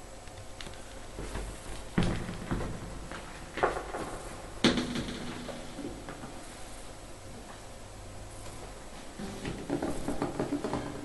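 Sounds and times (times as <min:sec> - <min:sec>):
knocks and thumps of handling: 0:09.2 - 0:11.0.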